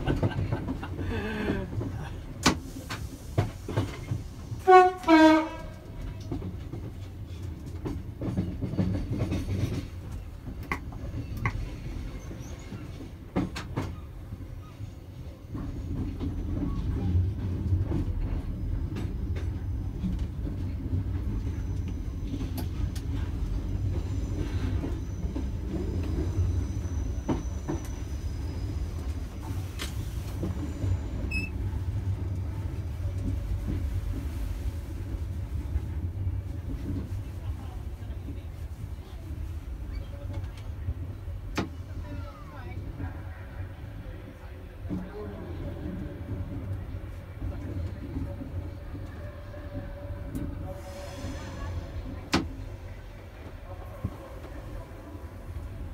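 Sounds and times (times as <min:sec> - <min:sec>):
train low rumble: 0:00.0 - 0:55.9
faint high squeal: 0:24.0 - 0:29.1.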